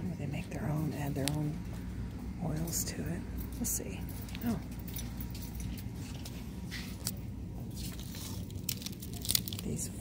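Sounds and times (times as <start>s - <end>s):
low hum of shop: 0.0s - 10.0s.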